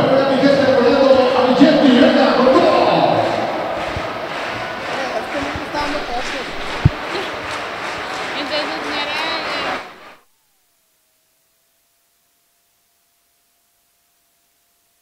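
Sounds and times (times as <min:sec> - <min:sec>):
hubbub of indistinct voices: 0:00.0 - 0:10.2
sharp thump: 0:05.8 - 0:07.0.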